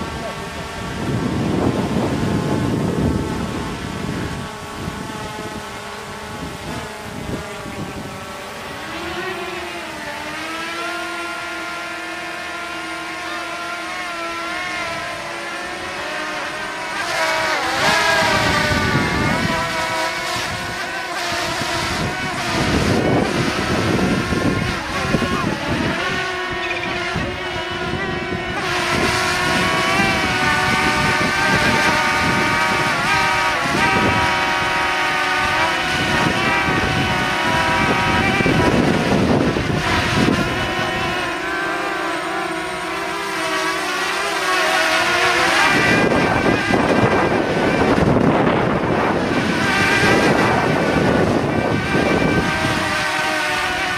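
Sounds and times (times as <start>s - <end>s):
drone propellers buzzing: 0.0s - 53.9s.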